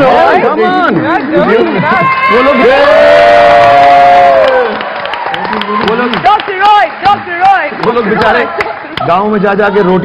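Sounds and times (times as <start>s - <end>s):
studio audience cheering: 1.5s - 10.0s
voices holding long shout: 1.9s - 4.8s.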